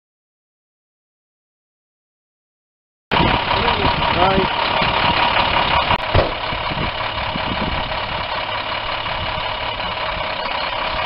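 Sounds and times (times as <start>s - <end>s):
diesel engine idling: 3.1s - 11.0s
person's voice: 3.2s - 4.6s.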